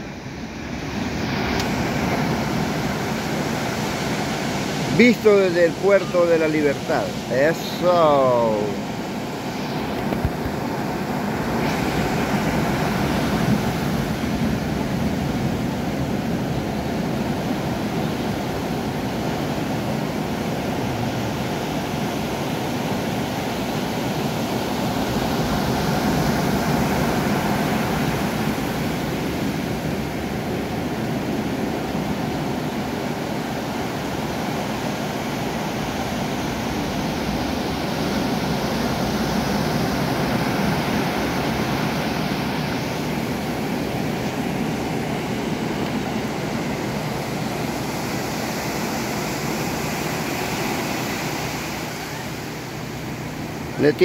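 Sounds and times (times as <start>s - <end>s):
ocean surf breaking on beach: 0.0s - 54.0s.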